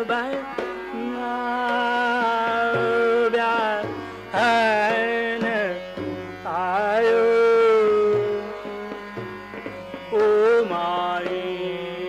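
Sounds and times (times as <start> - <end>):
man singing classical vocals: 0.0 - 12.0.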